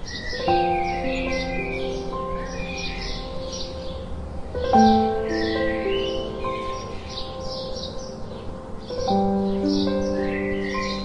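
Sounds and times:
faint background music: 0.0 - 11.0
sparrows chirping: 0.0 - 11.0.

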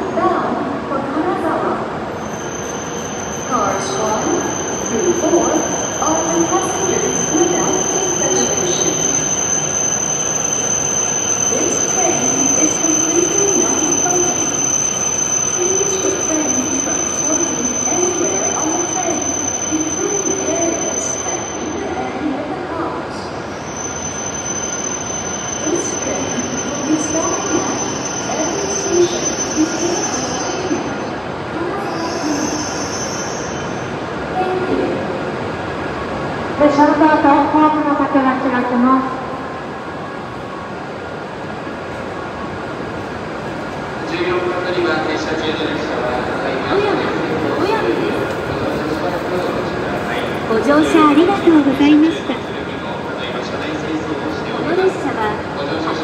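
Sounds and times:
train pulling in and stopping: 0.0 - 56.0.

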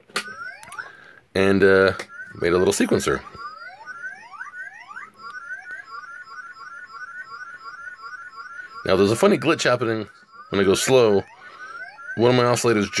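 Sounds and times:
electronic toy bleeps: 0.1 - 1.0, 1.7 - 13.0
upward-sweeping electronic chirps: 0.2 - 13.0.

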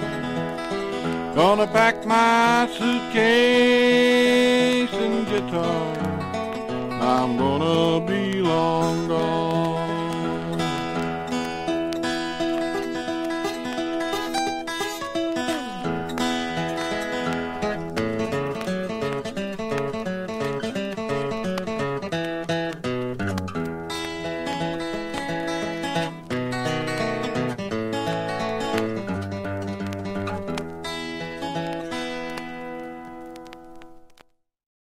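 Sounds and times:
acoustic guitar picking melody: 0.0 - 34.4.

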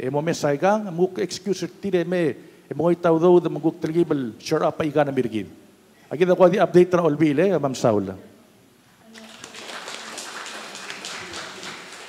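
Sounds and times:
audience applauding: 9.1 - 12.0.

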